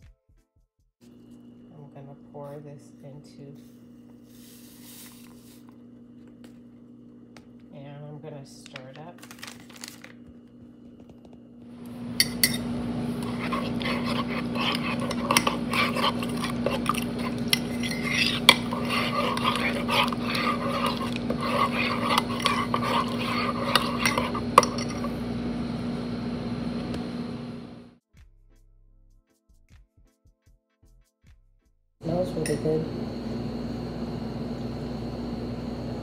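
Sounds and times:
spoon stirring in a ceramic mug: 12.0s - 25.4s, 32.1s - 32.8s.

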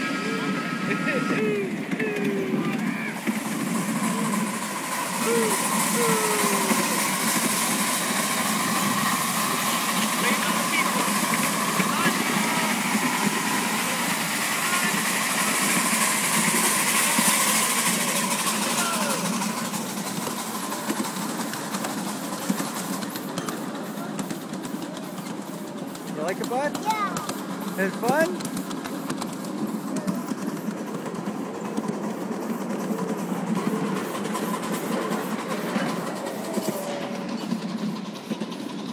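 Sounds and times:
miniature train running on track: 0.0s - 38.9s.

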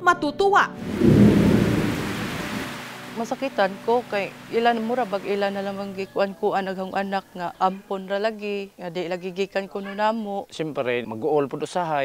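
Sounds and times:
low rumble of thunder: 0.8s - 3.9s
heavy rain on a metal roof: 0.8s - 5.6s.

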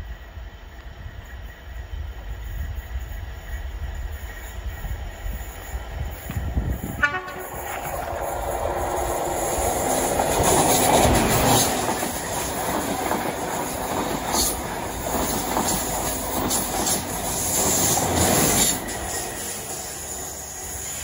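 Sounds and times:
train passing at speed: 0.0s - 21.0s
wheels clattering on rails: 5.8s - 19.8s
train horn: 6.9s - 7.9s.

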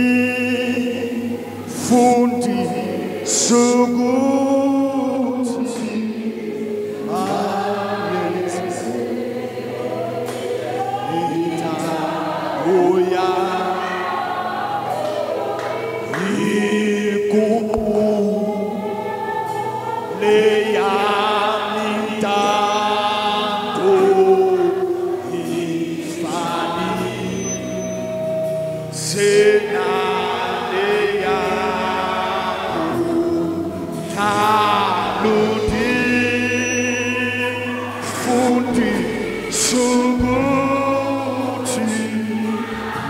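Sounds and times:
man singing into a microphone: 0.0s - 9.1s, 10.6s - 14.1s, 16.0s - 18.8s, 20.0s - 43.0s
sustained low backing tones: 0.0s - 43.0s
voices singing a hymn: 0.0s - 43.0s.

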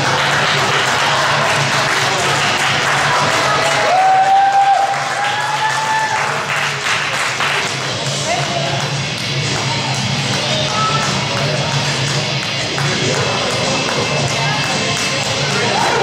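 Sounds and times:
high held cheer: 0.0s - 7.7s, 15.5s - 16.0s
background music: 0.0s - 16.0s
spectators clapping and cheering: 0.0s - 16.0s.

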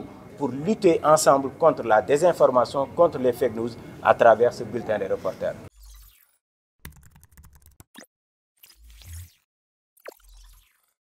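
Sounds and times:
keyboard typing clicks: 6.8s - 8.0s.

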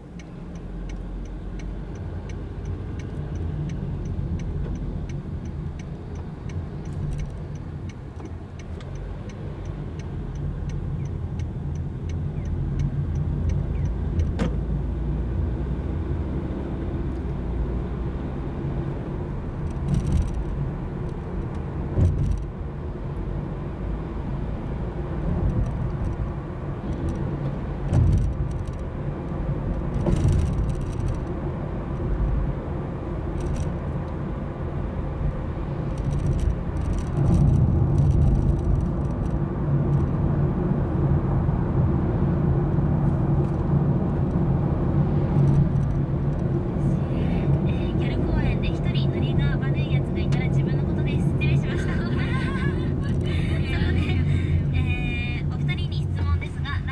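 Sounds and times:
car engine and road rumble: 0.0s - 56.9s
turn signal ticking: 0.0s - 56.9s.

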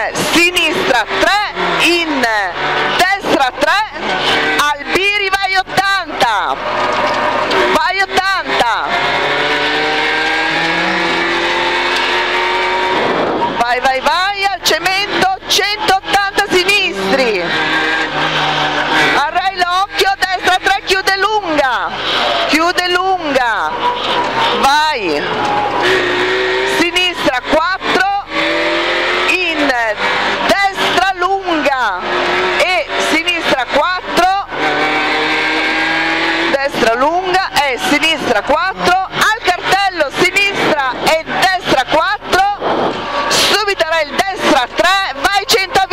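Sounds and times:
rally car engine revving: 0.0s - 45.9s.

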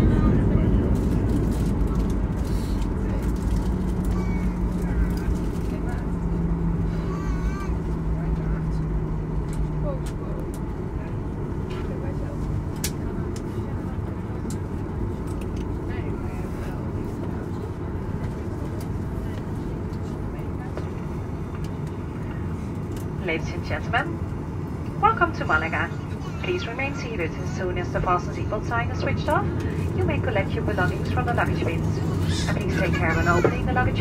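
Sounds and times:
aircraft cabin engine rumble: 0.0s - 34.0s.

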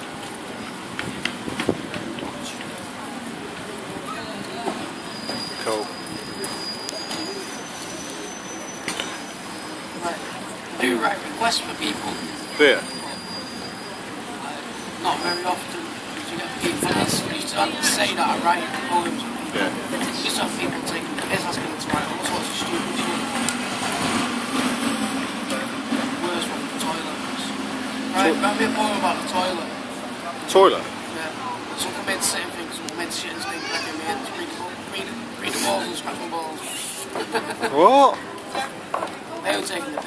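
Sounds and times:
tram wheels squealing on rails: 0.0s - 30.4s
busy street hubbub: 0.0s - 40.0s
vehicle engine humming: 18.7s - 33.3s.

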